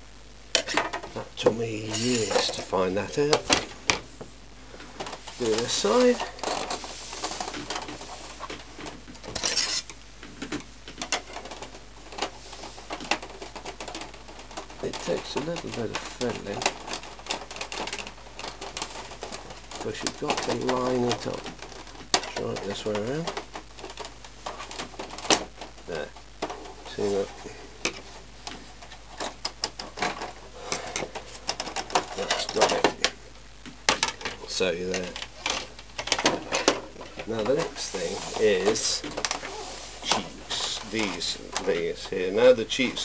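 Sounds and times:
scrape on plastic casing: 9.3s - 9.9s
plastic cover clicking and knocking: 10.2s - 12.3s, 29.2s - 30.4s.

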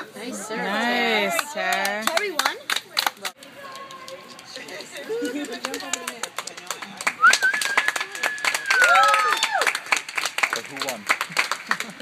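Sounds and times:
spectators cheering and clapping: 1.2s - 12.0s
long high cry: 8.2s - 9.7s.

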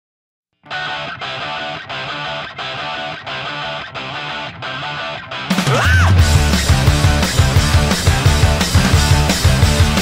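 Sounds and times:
electric guitar music: 0.6s - 10.0s.

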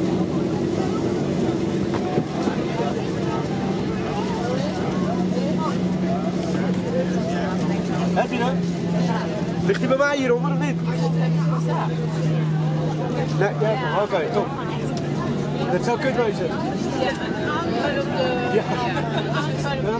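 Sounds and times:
jet engines humming at idle: 0.0s - 19.9s
passengers talking faintly: 0.0s - 19.9s.

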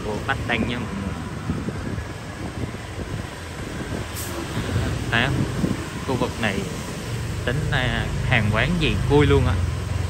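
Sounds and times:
wind on microphone: 0.0s - 7.0s.

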